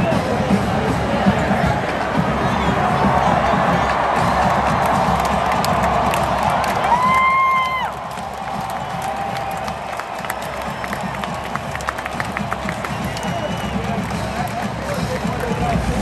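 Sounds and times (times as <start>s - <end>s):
stadium crowd cheering: 0.0s - 16.0s.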